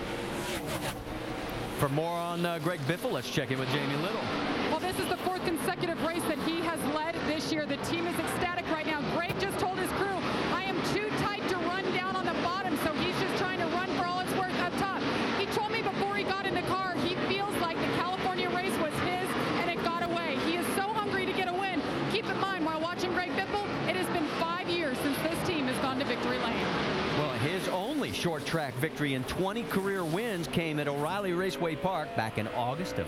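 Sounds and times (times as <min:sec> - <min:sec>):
stock cars droning on track: 0:00.0 - 0:33.0
reporter talking: 0:01.8 - 0:33.0.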